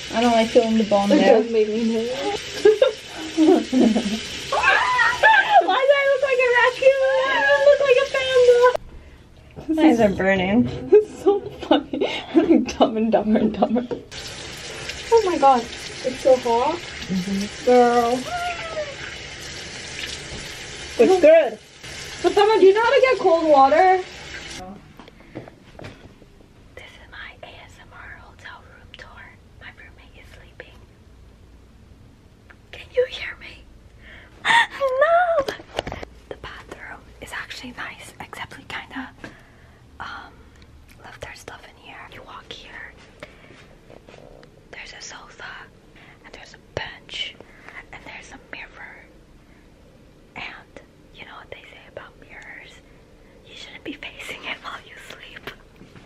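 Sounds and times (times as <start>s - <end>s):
woman whispering: 26.8s - 30.8s, 32.7s - 33.7s, 36.3s - 39.2s, 40.0s - 40.3s, 41.0s - 43.0s, 44.7s - 49.1s, 50.3s - 52.8s, 53.5s - 55.6s.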